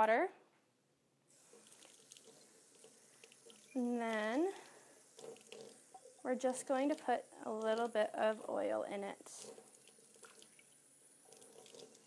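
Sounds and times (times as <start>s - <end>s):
faucet filling spray bottle: 1.3s - 8.6s, 9.2s - 12.0s.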